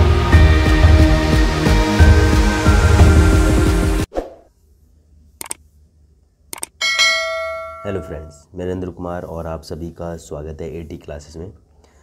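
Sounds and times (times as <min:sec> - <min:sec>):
bright bell ding: 0:06.8 - 0:08.4.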